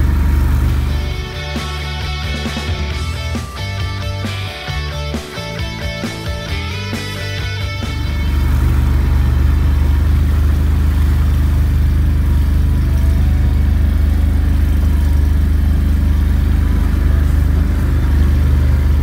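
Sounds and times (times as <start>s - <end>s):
atv engine running: 0.0s - 19.0s.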